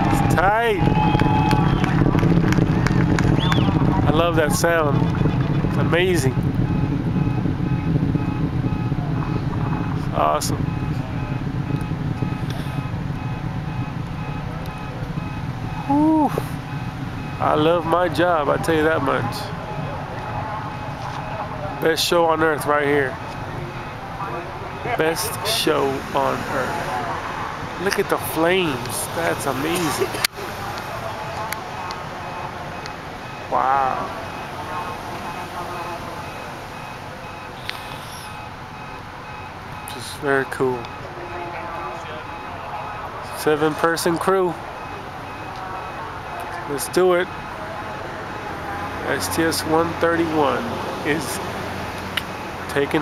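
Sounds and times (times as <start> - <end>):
car alarms beeping: 0.0 - 2.1, 3.3 - 53.0
distant rocket launch roar: 0.0 - 53.0
faint voices: 0.0 - 53.0.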